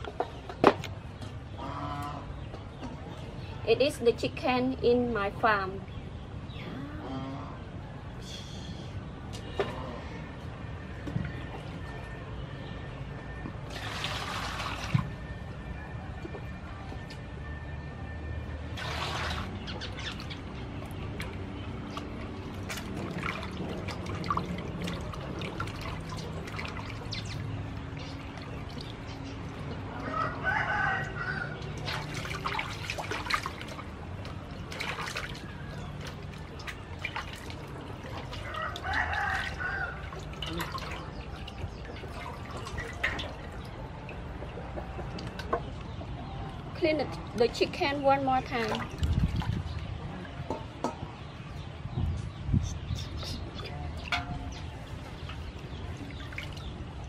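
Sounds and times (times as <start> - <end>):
water splashing in metal basin: 13.6 - 15.4, 18.7 - 30.1, 31.0 - 45.6, 48.4 - 51.2, 53.9 - 57.0
rooster crowing: 30.0 - 31.6, 38.4 - 40.1.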